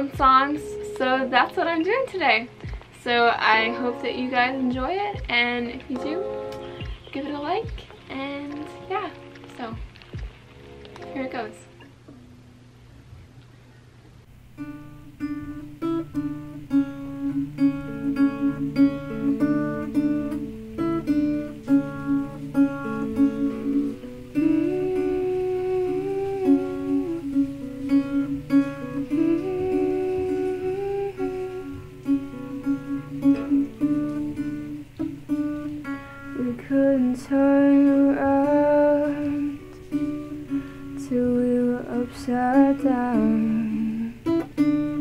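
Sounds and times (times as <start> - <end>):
woman singing: 0.0 - 9.9, 21.8 - 34.8, 36.3 - 45.0
acoustic guitar playing: 0.0 - 12.8, 14.2 - 45.0.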